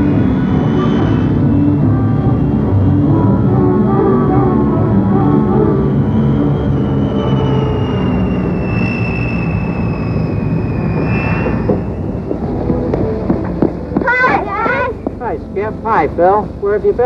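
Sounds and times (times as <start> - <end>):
turboprop airliner passing by: 0.0 - 17.0.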